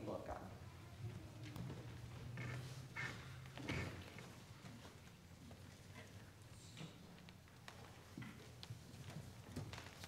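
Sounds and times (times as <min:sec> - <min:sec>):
faint footsteps: 0:00.9 - 0:10.0.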